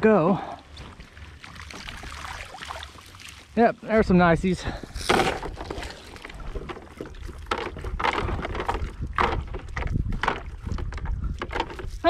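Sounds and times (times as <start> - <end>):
water splashing off net: 1.4 - 3.6
wind rumble on microphone: 4.0 - 12.0.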